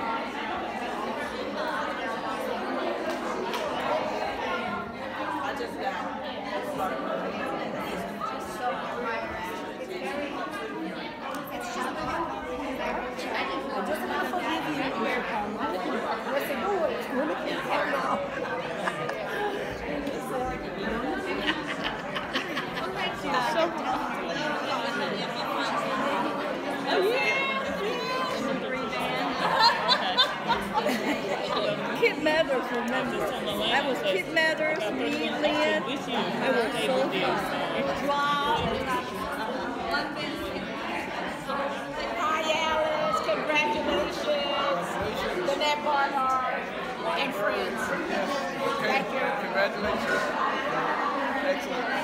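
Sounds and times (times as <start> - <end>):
chatter of many people: 0.0 - 52.0.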